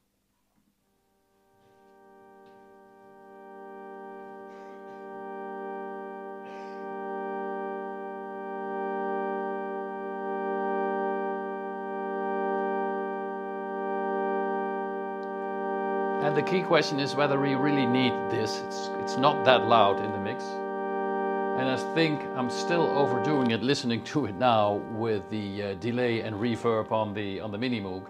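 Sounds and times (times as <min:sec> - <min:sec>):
organ sustained tone: 0:00.7 - 0:28.0.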